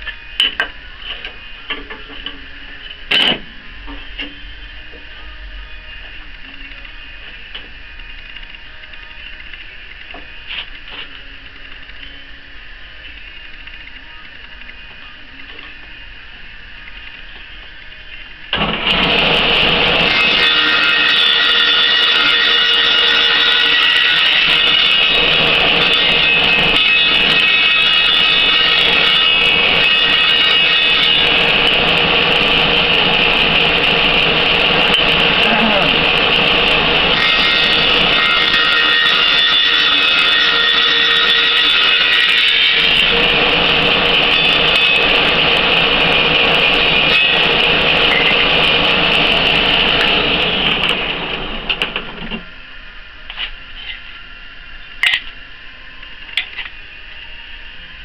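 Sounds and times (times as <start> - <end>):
table saw whining: 18.6 - 52.7.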